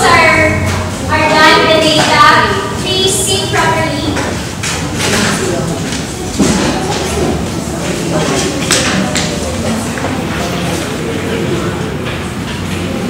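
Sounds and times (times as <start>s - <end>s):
students chattering: 0.0s - 13.0s.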